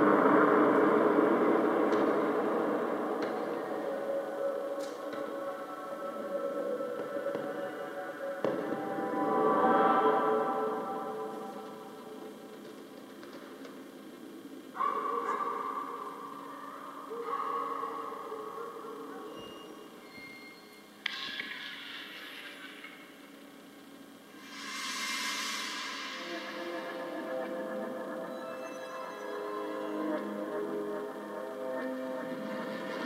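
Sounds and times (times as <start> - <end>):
ambient music over speakers: 0.0 - 33.0
sustained steady tones: 24.1 - 33.0
hiss: 24.3 - 27.3.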